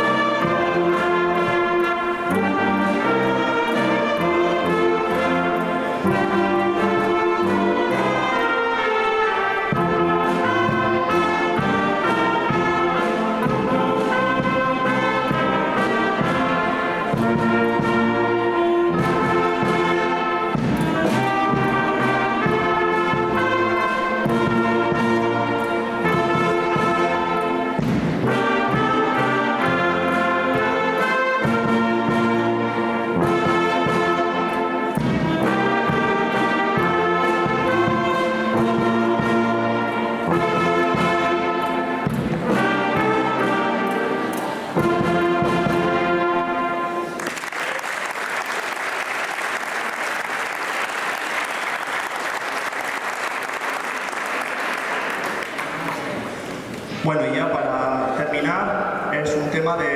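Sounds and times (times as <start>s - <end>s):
percussion strokes: 0.0s - 47.4s
wind band playing: 0.0s - 59.9s.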